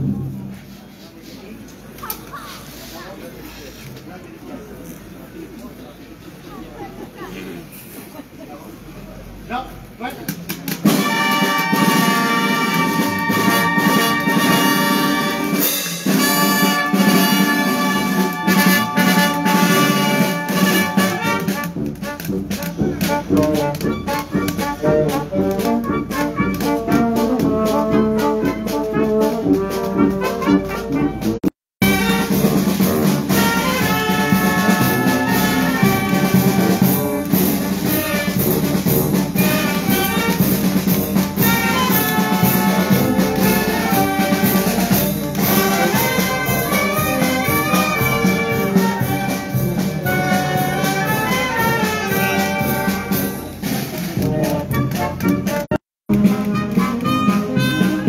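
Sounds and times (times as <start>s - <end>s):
marching brass band playing: 10.8s - 58.0s.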